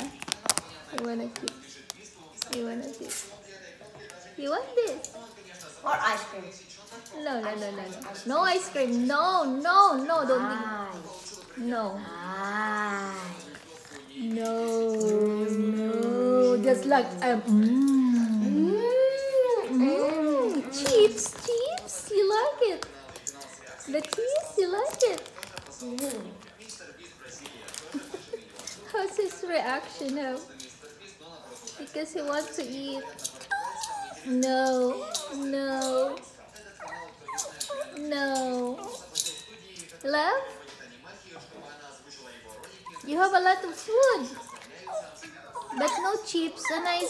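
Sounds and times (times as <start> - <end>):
small dog whimpering and yipping: 33.0 - 34.3, 36.8 - 38.0, 44.3 - 47.0.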